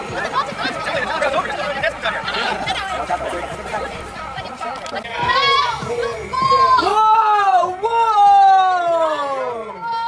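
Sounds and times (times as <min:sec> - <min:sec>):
drawn-out falling cries: 0:00.0 - 0:10.0
young people shouting: 0:05.0 - 0:10.0.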